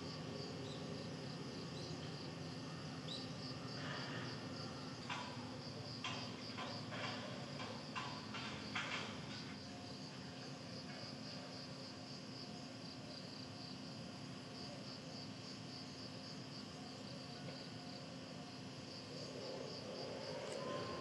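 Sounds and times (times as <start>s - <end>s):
insects chirping: 0.0s - 21.0s
low background hum: 0.0s - 21.0s.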